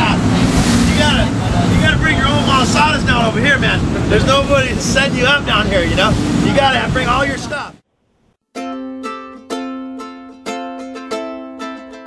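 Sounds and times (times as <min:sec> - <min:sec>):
water rushing past hull: 0:00.0 - 0:07.6
wind buffeting microphone: 0:00.0 - 0:07.7
boat motors rumbling: 0:00.0 - 0:07.8.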